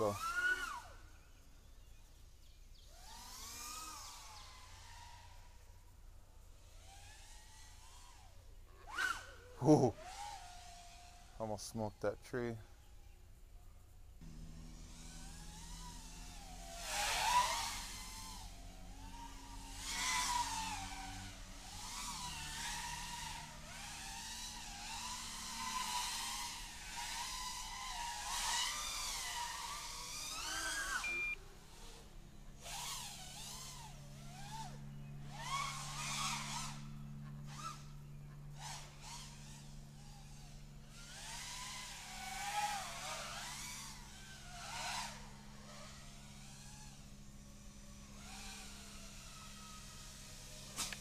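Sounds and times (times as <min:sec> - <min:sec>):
quadcopter motors whining: 0:00.0 - 0:51.0.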